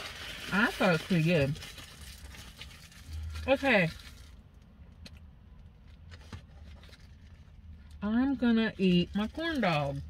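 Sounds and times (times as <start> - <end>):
wrapper crinkling: 0.0 - 4.6, 9.0 - 10.0.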